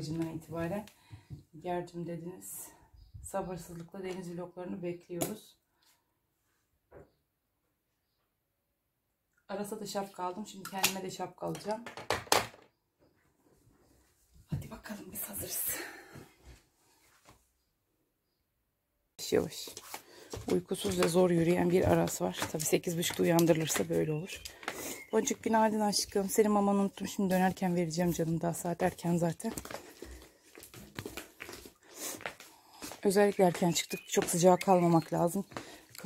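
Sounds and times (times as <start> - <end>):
sandals tapping on stone steps: 19.6 - 36.0.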